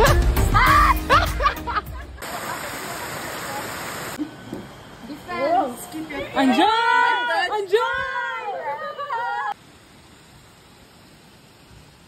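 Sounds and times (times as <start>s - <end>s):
music with voices: 0.0s - 1.9s
shallow river water flowing: 2.2s - 4.8s.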